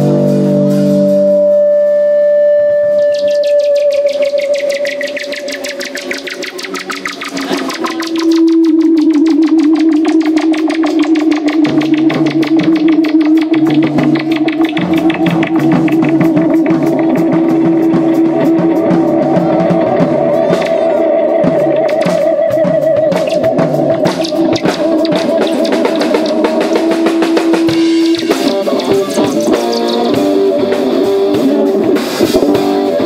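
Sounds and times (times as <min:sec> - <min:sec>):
live rock band music: 0:00.0 - 0:33.0.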